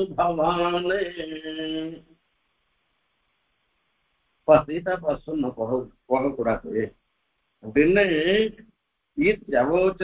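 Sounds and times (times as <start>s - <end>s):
man chanting verse: 0.0s - 2.0s, 4.5s - 6.9s, 7.6s - 8.6s, 9.2s - 10.0s.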